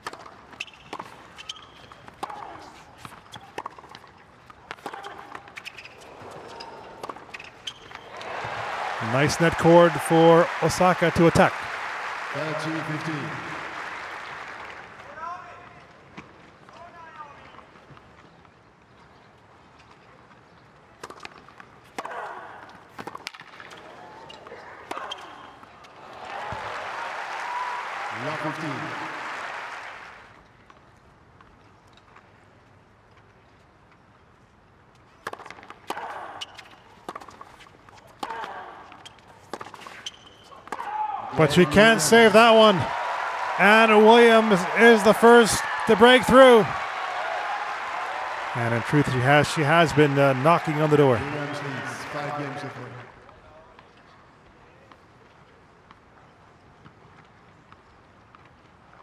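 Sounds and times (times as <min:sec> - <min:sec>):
tennis ball strikes and bounces: 0:00.0 - 0:08.6, 0:35.2 - 0:40.9
racket hits in a rally: 0:00.0 - 0:11.7, 0:21.0 - 0:27.1, 0:35.2 - 0:52.6
crowd applause: 0:07.9 - 0:15.2, 0:26.0 - 0:30.3, 0:41.3 - 0:53.2.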